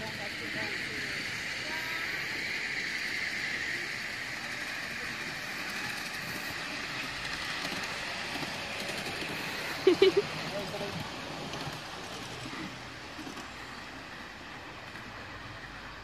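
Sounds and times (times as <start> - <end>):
miniature train running on track: 0.0 - 16.0.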